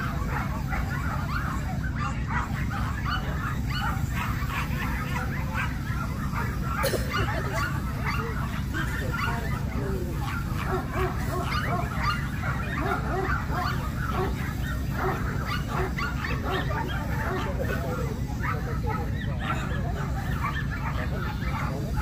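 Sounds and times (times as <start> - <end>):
many dogs barking: 0.0 - 22.0
murmur of voices: 0.0 - 22.0.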